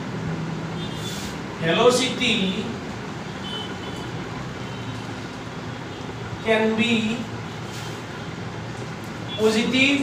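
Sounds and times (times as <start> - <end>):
low rumble and hiss: 1.4 - 3.3.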